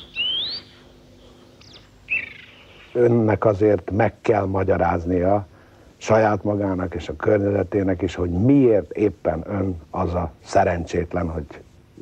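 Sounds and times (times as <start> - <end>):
bird whistled call: 0.0 - 0.9, 1.6 - 3.0
faint background hiss: 0.0 - 12.0.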